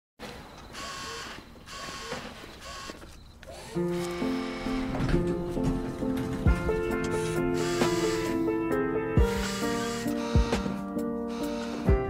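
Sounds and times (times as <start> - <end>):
servo motors whirring: 0.8 - 4.6.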